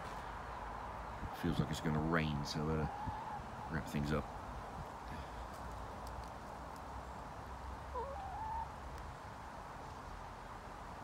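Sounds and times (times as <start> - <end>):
hen calling: 2.3 - 4.2, 7.9 - 8.8
faint clicks: 5.5 - 6.9.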